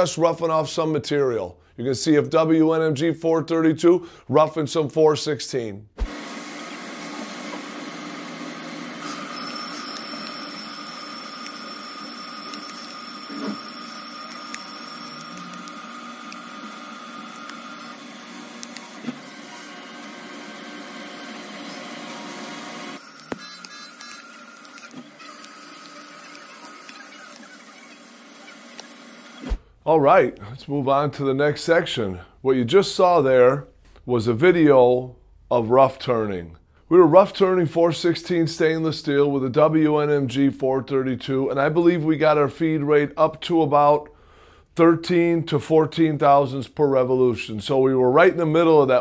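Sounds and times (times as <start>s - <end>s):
lathe machining steel: 7.1s - 29.4s
sharp clicks: 18.6s - 19.0s.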